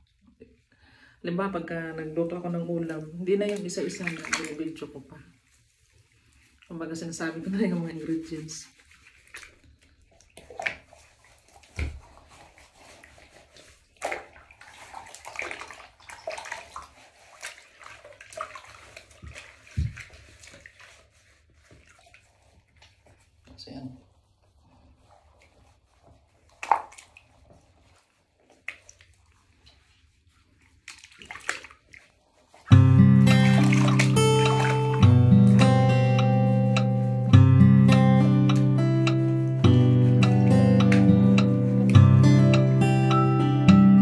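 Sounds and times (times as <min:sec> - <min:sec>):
bath water splashing: 0:01.6 - 0:44.0
hands rubbing wet skin: 0:02.4 - 0:43.4
acoustic guitar music: 0:32.7 - 0:44.0.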